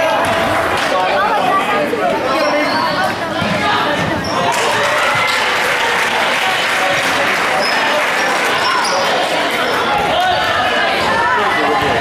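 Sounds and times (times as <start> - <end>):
hubbub of voices: 0.0 - 12.0
sneakers squeaking: 2.2 - 5.5, 7.6 - 10.5.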